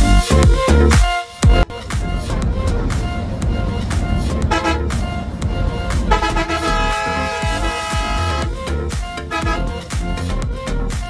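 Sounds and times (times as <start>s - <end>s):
background music with steady beat: 0.0s - 11.0s
vehicle horn: 4.1s - 8.6s, 9.2s - 9.9s.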